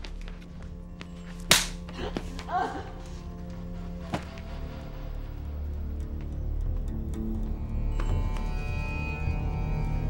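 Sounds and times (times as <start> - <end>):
low music drone: 0.1 - 10.0
sharp smack: 1.5 - 1.8.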